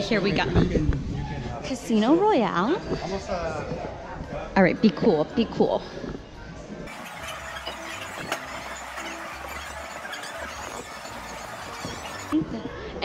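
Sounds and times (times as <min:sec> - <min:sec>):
slot machines chiming: 0:06.9 - 0:12.4.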